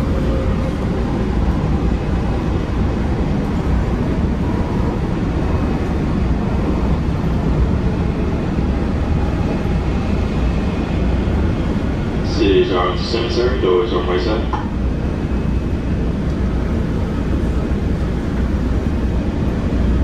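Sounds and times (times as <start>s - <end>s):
train wheels rumbling on track: 0.0s - 20.0s.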